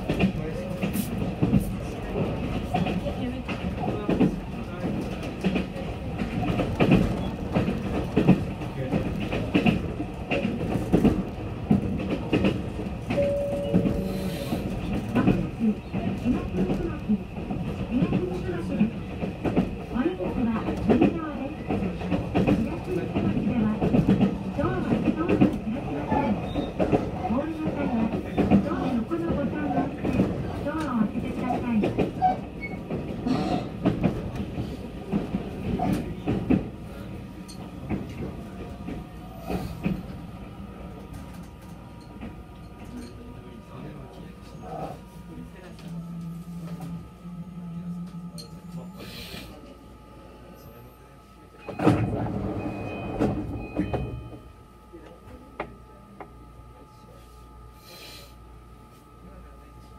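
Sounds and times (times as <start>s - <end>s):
rail joint clicks: 0.0s - 36.8s, 37.4s - 40.2s, 51.6s - 54.4s
train wheels rumbling on rails: 0.0s - 50.9s, 51.6s - 54.6s.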